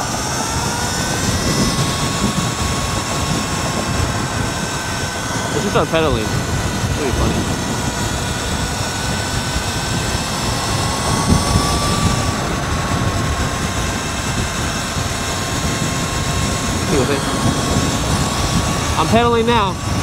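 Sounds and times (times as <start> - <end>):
electric motor whine: 0.0 - 20.0
wind buffeting microphone: 0.0 - 20.0.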